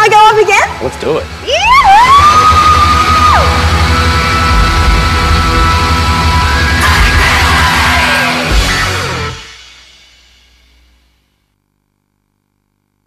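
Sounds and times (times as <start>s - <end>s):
rock music: 0.7s - 11.0s.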